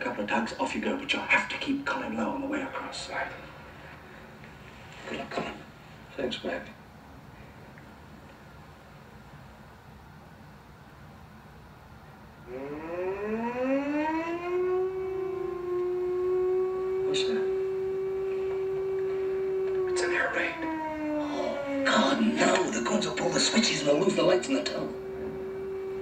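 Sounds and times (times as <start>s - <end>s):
air-raid siren wailing: 12.4s - 26.0s.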